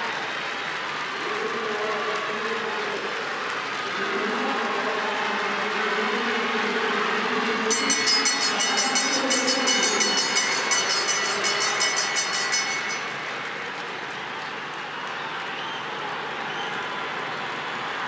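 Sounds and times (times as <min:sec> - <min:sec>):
stadium crowd noise: 0:00.0 - 0:18.0
hand bell rung rapidly: 0:07.7 - 0:13.8.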